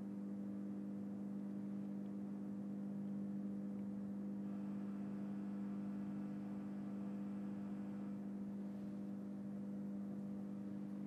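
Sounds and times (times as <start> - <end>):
electrical hum: 0.0 - 11.0
faint higher buzz: 4.4 - 9.2.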